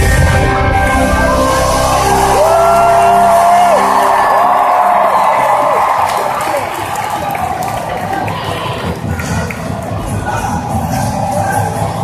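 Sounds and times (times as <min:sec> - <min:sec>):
live band music: 0:00.0 - 0:07.1
crowd cheering and whooping: 0:01.0 - 0:12.0.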